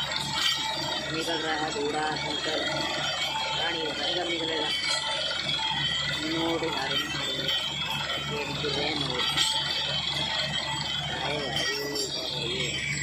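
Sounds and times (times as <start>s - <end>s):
drilling rig low pulsing: 0.0s - 13.0s
person talking: 1.1s - 2.9s, 3.6s - 4.8s, 6.2s - 9.4s, 11.1s - 12.8s.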